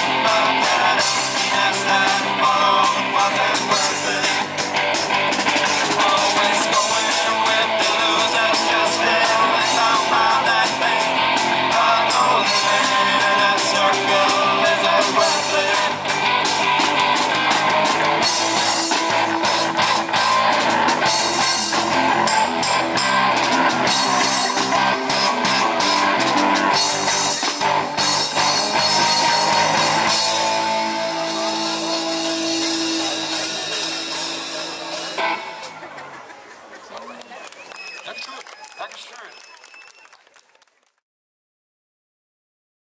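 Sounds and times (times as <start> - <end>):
drum kit: 0.0 - 36.2
electric guitars: 0.0 - 36.3.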